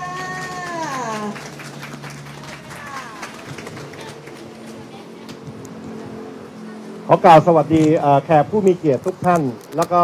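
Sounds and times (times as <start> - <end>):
scattered clapping: 0.0 - 5.4.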